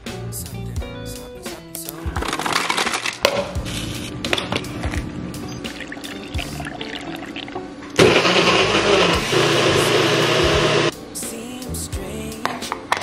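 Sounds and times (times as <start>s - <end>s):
background music: 0.0s - 13.0s
blender motor running: 8.0s - 10.9s.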